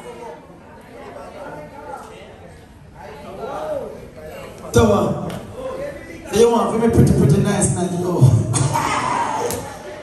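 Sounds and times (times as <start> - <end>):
indistinct talking in echoing hall: 0.0 - 10.0.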